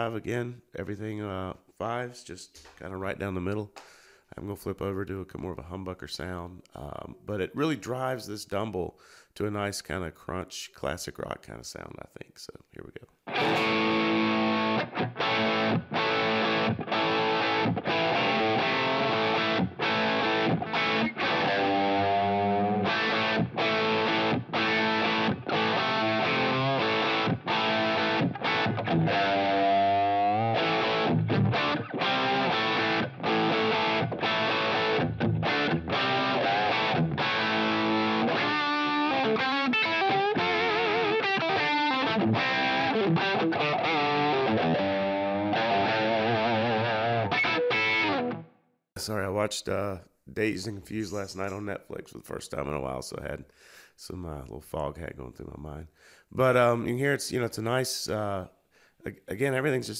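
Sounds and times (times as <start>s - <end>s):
overdriven electric guitar riff: 13.2s - 48.6s.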